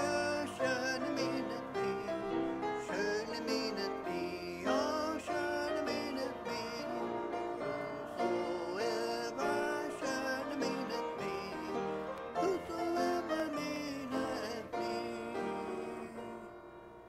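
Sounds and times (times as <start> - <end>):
congregation singing a hymn: 0.0 - 17.0.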